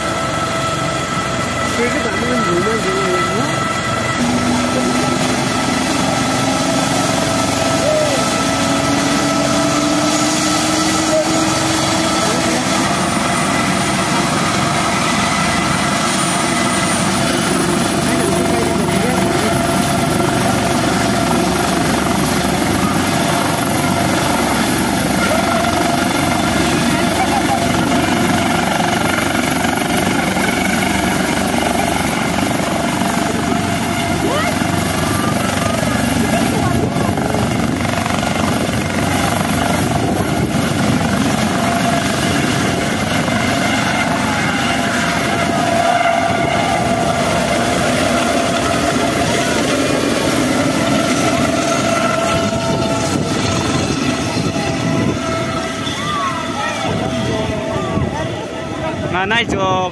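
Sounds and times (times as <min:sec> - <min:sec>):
helicopter rotor and turbine noise: 0:00.0 - 0:59.9
high-pitched turbine whine: 0:00.0 - 0:59.9.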